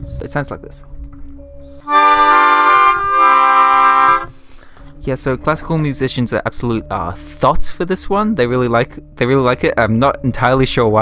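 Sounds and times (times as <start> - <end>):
melodica chords: 1.8 - 4.4.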